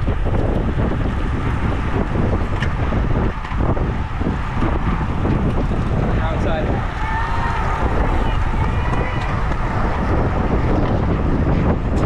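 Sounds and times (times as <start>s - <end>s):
wind rumbling over microphone: 0.0s - 12.0s.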